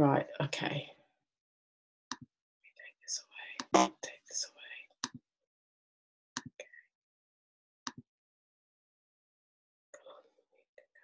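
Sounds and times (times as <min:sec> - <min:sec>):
woman speaking softly: 0:00.0 - 0:00.9.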